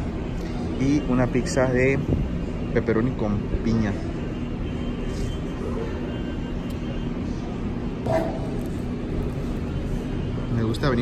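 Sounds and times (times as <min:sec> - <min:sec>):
faint constant hum: 0:00.0 - 0:11.0
restaurant background rumble: 0:03.4 - 0:11.0.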